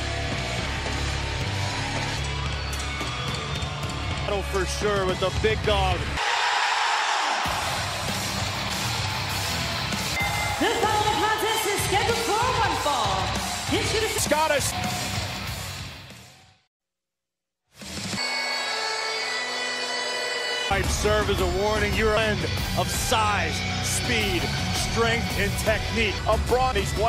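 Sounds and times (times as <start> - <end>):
rock music: 0.0 - 6.2, 7.4 - 16.6, 17.8 - 27.0.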